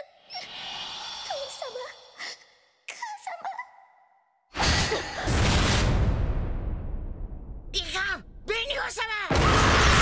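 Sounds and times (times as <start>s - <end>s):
loud rushing whoosh: 0.3s - 2.2s.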